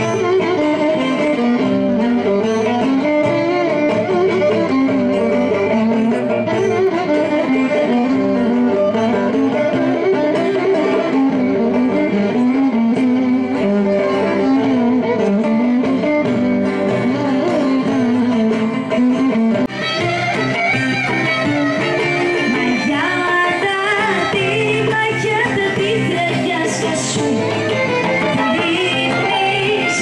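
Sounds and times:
strummed lute accompaniment: 0:00.0 - 0:30.0
violin melody: 0:00.0 - 0:30.0.

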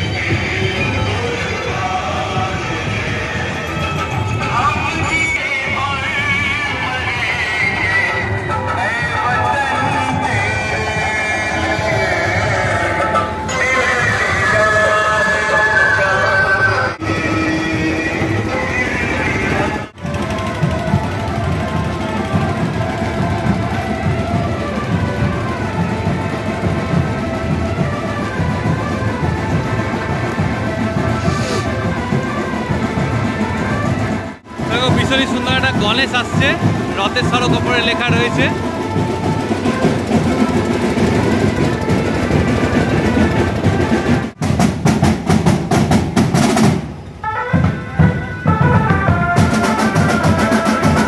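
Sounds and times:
street procession noise: 0:00.0 - 0:51.0
marching band drumming: 0:17.0 - 0:51.0.

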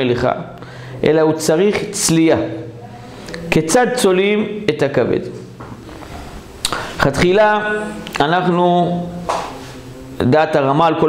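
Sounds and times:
man speaking: 0:00.0 - 0:02.8, 0:03.4 - 0:05.5, 0:06.8 - 0:09.3, 0:10.2 - 0:11.0.

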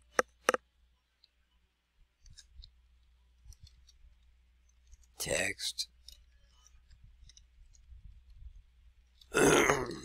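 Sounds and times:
man clearing his throat: 0:09.4 - 0:10.0.

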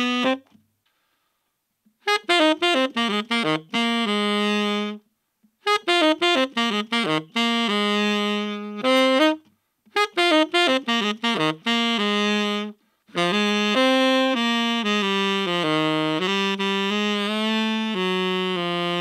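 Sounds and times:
tenor saxophone playing: 0:00.0 - 0:01.1, 0:01.9 - 0:19.0.

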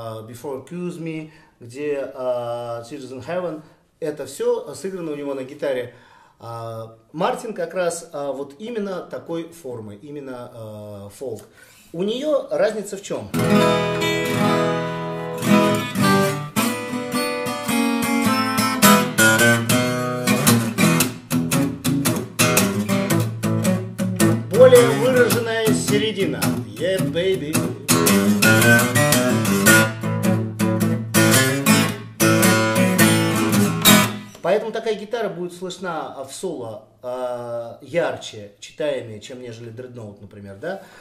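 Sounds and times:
acoustic guitar picking: 0:13.3 - 0:34.4.

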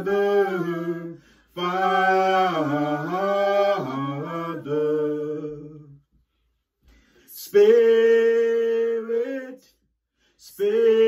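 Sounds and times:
people singing unaccompanied chorus: 0:00.0 - 0:06.0.

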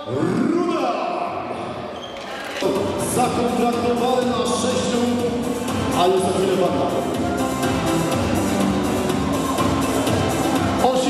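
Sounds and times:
murmur echoing in a hall: 0:00.0 - 0:11.0
background music: 0:02.5 - 0:11.0.

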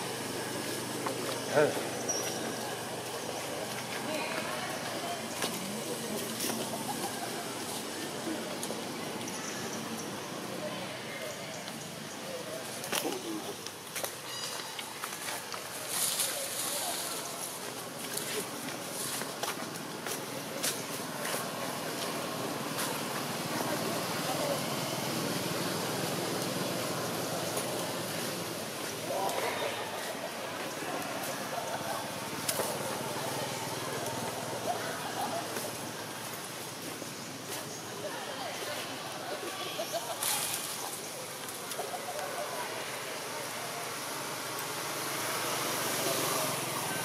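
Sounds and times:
faint indistinct voices: 0:00.0 - 0:47.0
birds calling: 0:00.6 - 0:05.4, 0:14.2 - 0:15.0.

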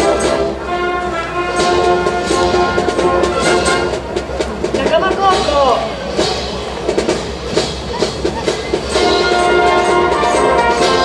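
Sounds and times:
brass band playing a march: 0:00.0 - 0:07.7, 0:08.4 - 0:11.0
drums keeping a steady beat: 0:00.0 - 0:11.0.

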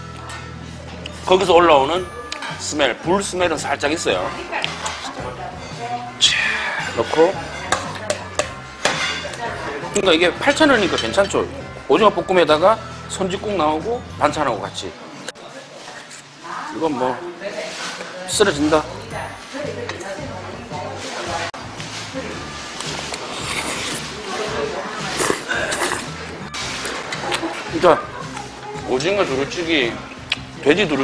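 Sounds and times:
background music: 0:00.0 - 0:15.4, 0:18.3 - 0:31.0
metal spoon clinking on steel bowl: 0:02.1 - 0:02.6, 0:06.8 - 0:09.5, 0:10.5 - 0:11.4
person chewing: 0:22.8 - 0:24.3, 0:25.0 - 0:27.6
person slurping food: 0:22.8 - 0:24.4, 0:25.0 - 0:27.4.

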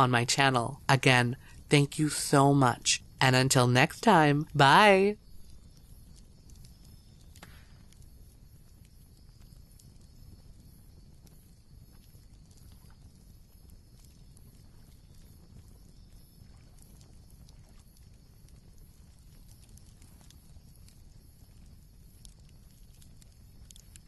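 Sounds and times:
wood fire crackling and popping: 0:00.0 - 0:24.0.

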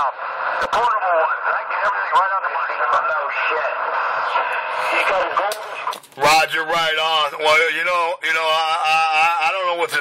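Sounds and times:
voice over radio speaker: 0:00.0 - 0:10.0.

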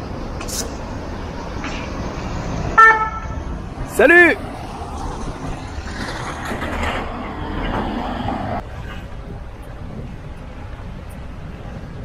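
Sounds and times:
wind and road noise rumble: 0:00.0 - 0:12.0
fire van horn toot: 0:02.8 - 0:03.4.

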